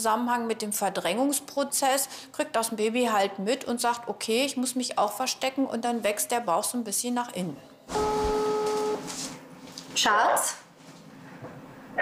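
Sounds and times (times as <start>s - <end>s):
telephone ringback beep: 8.0s - 9.1s.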